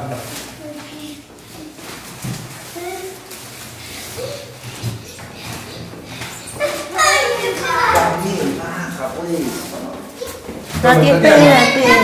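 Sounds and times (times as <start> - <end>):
child vocalizing: 11.3 - 12.0.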